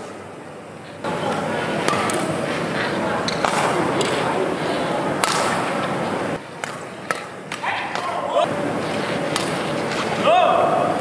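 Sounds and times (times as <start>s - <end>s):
steady background noise: 0.0s - 11.0s
racket hitting shuttlecock: 1.2s - 2.4s, 3.2s - 4.4s, 5.2s - 5.8s, 6.6s - 8.4s, 9.3s - 10.1s.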